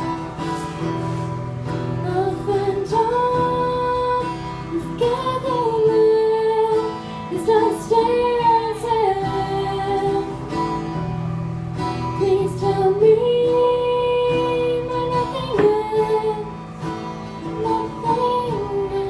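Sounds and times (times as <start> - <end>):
strummed acoustic guitar: 0.0 - 19.0
woman singing: 1.8 - 10.8, 12.0 - 19.0.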